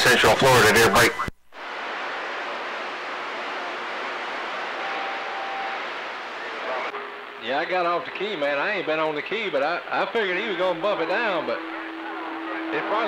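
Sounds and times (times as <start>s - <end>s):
radio static hiss: 0.0s - 13.0s
radio transmission cutting off: 0.0s - 13.0s.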